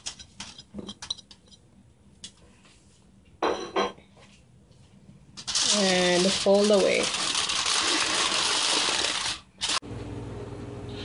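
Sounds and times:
aluminium foil crinkling: 0:05.4 - 0:09.8.

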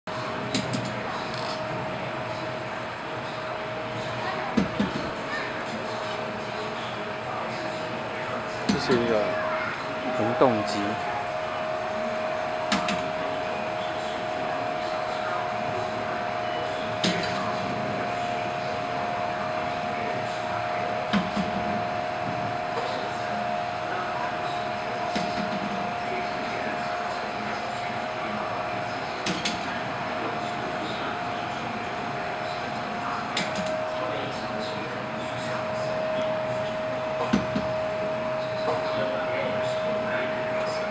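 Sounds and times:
steady high-pitched hum: 0:00.1 - 0:40.9.

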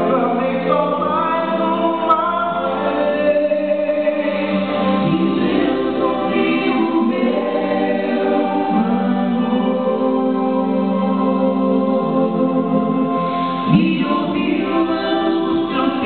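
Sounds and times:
vocal trio singing gospel: 0:00.0 - 0:16.0.

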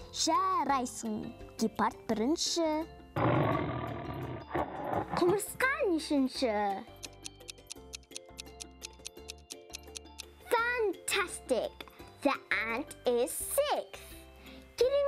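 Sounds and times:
light children's music: 0:00.0 - 0:03.2, 0:04.4 - 0:15.0
big cat roar: 0:03.2 - 0:05.4.

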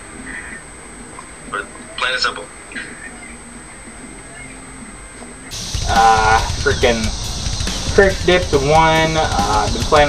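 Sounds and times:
man saying uhh: 0:05.9 - 0:06.6.

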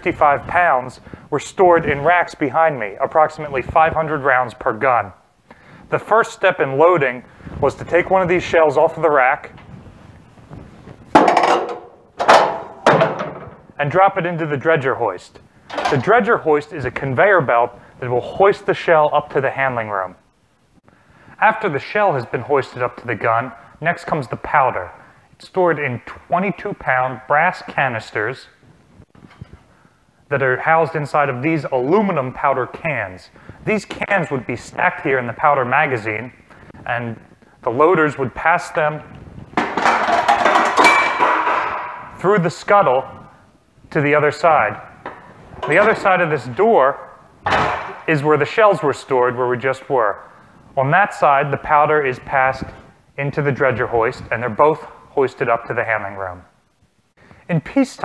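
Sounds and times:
metal can scraping and clattering: 0:11.2 - 0:13.7, 0:45.1 - 0:46.1
loud metallic clanks: 0:11.2 - 0:13.8, 0:39.6 - 0:42.2, 0:47.4 - 0:48.1.

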